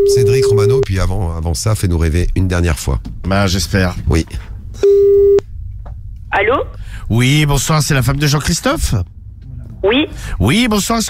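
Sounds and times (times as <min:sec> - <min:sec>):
telephone ringing tone beep: 0:04.8 - 0:05.4.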